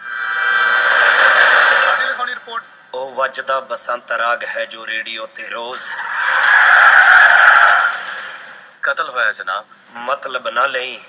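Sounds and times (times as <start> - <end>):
whoosh sound effect: 0.0 - 2.5.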